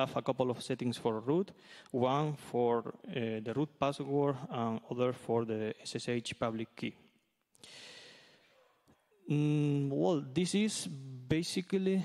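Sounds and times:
man breathing into microphone: 7.6s - 8.6s.

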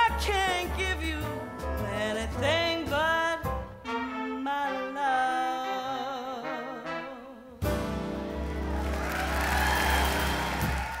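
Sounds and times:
audience applauding and cheering: 8.2s - 11.0s.

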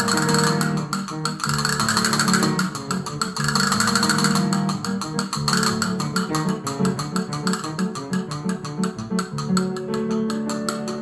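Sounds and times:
castanets clicking: 0.0s - 11.0s
held instrumental notes: 0.0s - 11.0s.

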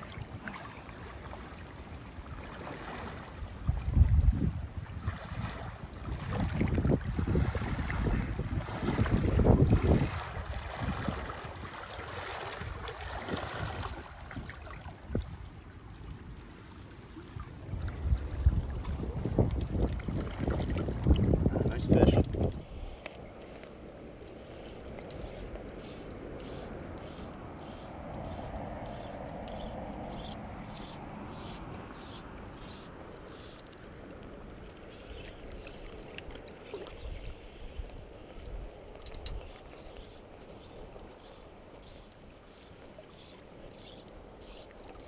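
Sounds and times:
shallow river rushing: 0.0s - 4.2s, 5.0s - 19.1s
wind buffeting microphone: 3.4s - 11.7s, 12.3s - 16.4s, 17.3s - 23.0s.

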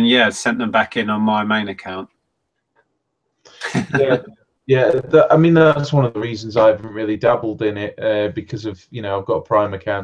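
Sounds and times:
man's breathy laugh: 3.6s - 4.2s.

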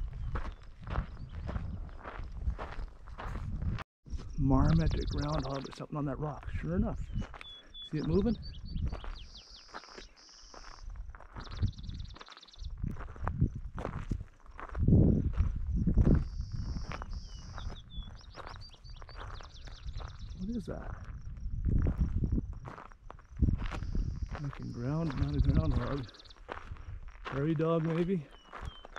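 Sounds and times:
footsteps on gravel: 0.0s - 3.8s, 6.4s - 28.9s.

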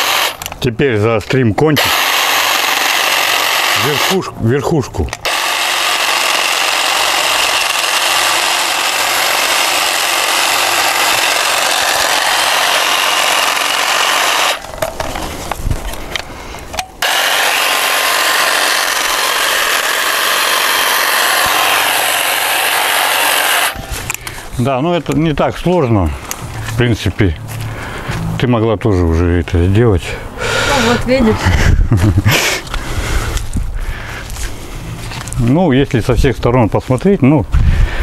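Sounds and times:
hedge trimmer running: 0.0s - 0.6s, 1.8s - 24.3s.

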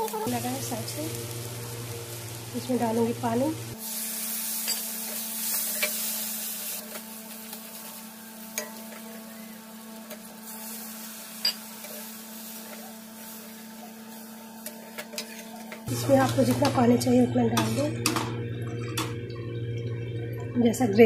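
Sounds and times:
water sizzling in hot oil: 0.0s - 18.2s.

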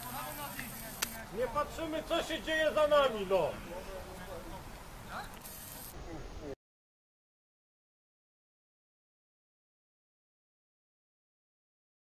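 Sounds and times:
distant voices of players: 0.0s - 6.6s
steady background noise: 0.0s - 6.6s.

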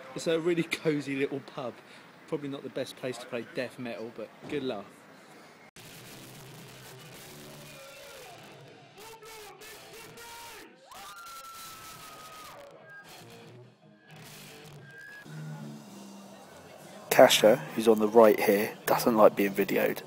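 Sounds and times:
screamed vocals: 10.2s - 12.7s.

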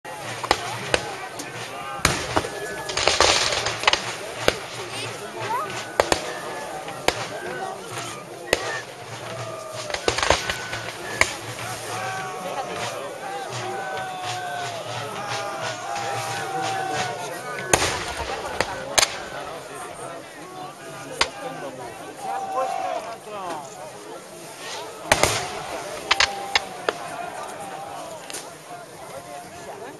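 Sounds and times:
people talking: 0.0s - 29.9s
musket shots: 0.3s - 5.1s, 8.5s - 11.8s, 17.7s - 19.6s, 24.6s - 27.1s.

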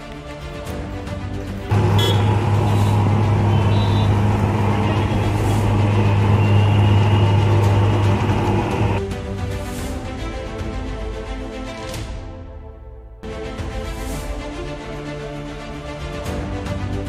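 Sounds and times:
background music: 0.0s - 17.0s
fogging machine buzzing drone: 1.7s - 9.0s.

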